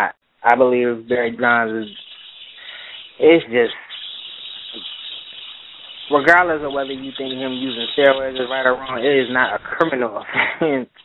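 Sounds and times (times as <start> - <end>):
phone line hiss: 1.4 - 10.0.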